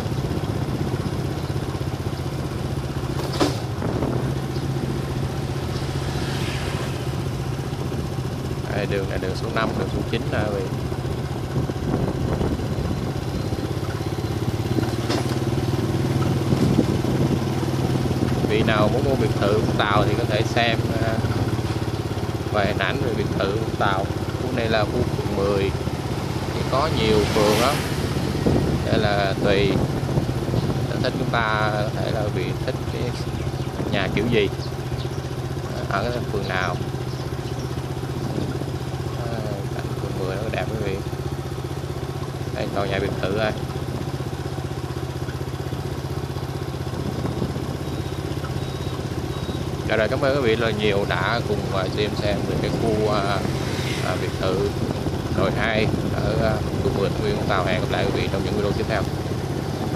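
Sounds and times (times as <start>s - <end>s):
small motorbike engine running: 0.0s - 59.9s.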